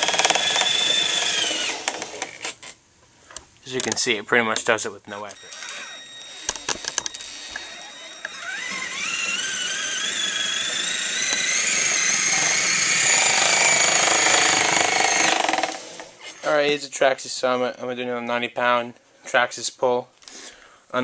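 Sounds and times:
electric motor and drivetrain whining: 0.0s - 2.5s, 5.4s - 16.2s
clicks: 3.3s - 9.4s.

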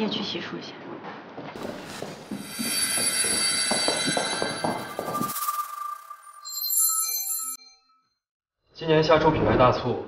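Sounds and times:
sustained high tones: 1.6s - 8.0s.

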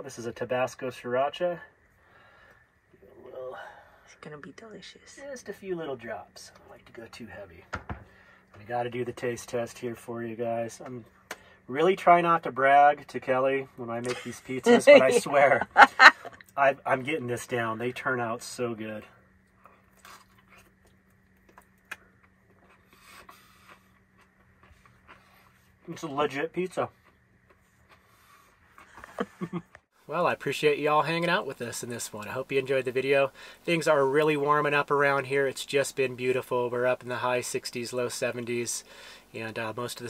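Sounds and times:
steady low hum: 0.0s - 40.0s
man murmuring: 14.1s - 15.6s
chewing with soft crunches: 19.3s - 29.1s.

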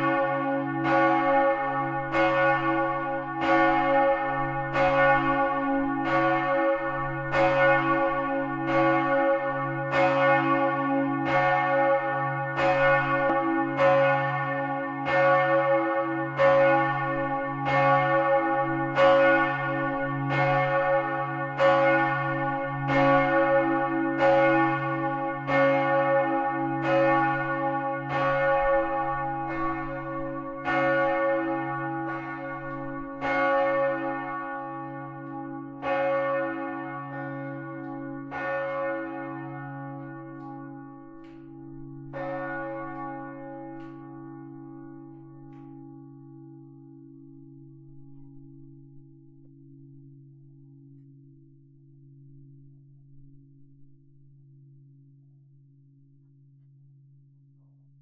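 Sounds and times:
church bells ringing: 0.0s - 51.0s.

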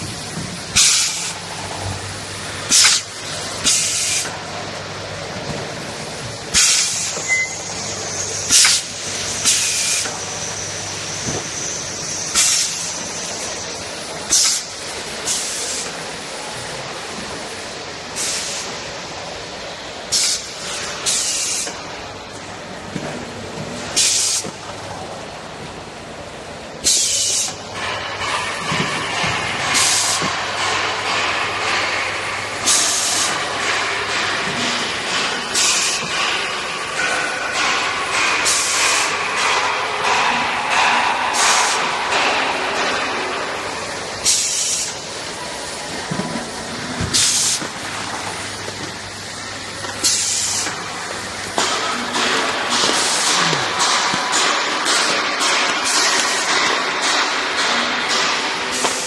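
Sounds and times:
sharp hiss of air: 26.8s - 27.6s
machine mechanical din: 27.8s - 59.0s.

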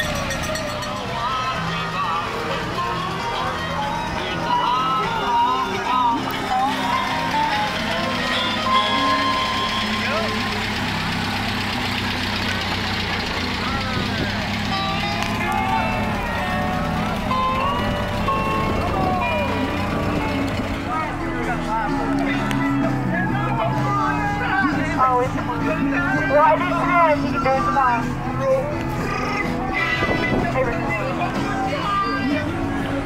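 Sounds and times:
music: 0.0s - 33.0s
people's voices: 0.0s - 33.0s
vehicle passing slowly: 0.0s - 33.0s.

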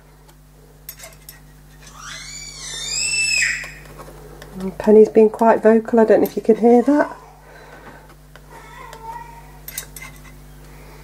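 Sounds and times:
pet's high-pitched call: 1.9s - 3.8s.

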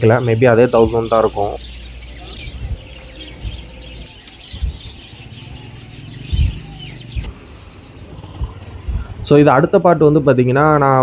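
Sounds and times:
birds chirping: 0.0s - 11.0s
dull low thumps: 1.7s - 5.2s, 6.1s - 7.4s, 8.3s - 9.3s.

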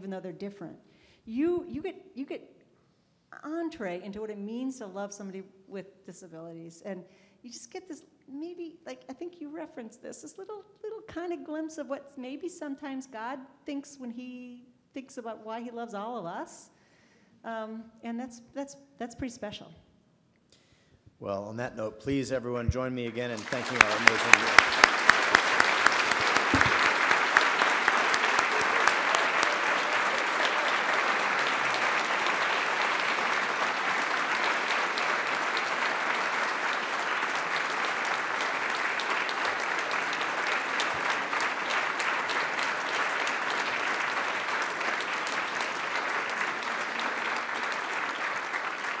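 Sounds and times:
audience applauding: 23.1s - 49.0s
loud close claps: 23.2s - 49.0s.

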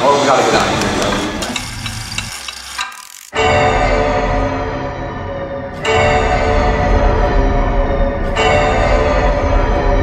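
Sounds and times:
clock mechanism whirring and clicking: 0.6s - 3.4s.

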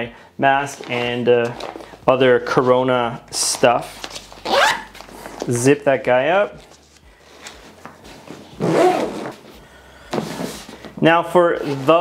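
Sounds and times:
backpack zipper rasping: 4.3s - 5.4s, 8.2s - 9.5s.

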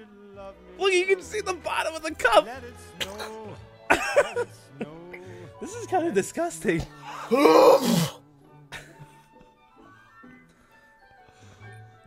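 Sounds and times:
background music: 0.0s - 12.0s
person coughing: 3.9s - 4.5s, 7.3s - 8.2s
men laughing: 3.9s - 6.0s, 8.7s - 9.7s.

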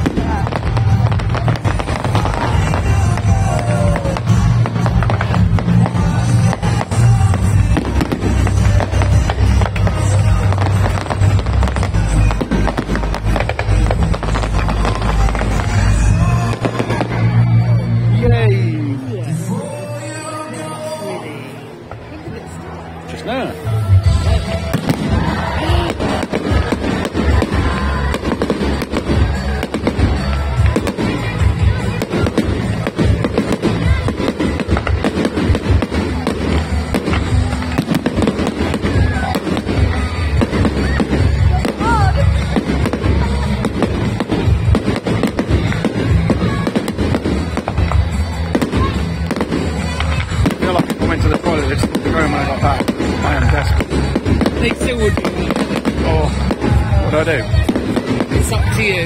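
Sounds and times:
fireworks bursting: 0.0s - 18.4s, 21.8s - 59.0s
music: 0.0s - 59.0s.

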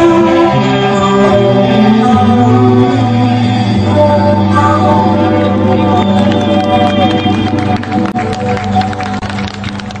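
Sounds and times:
live band playing: 0.0s - 10.0s
crowd applause and cheering: 4.8s - 10.0s.

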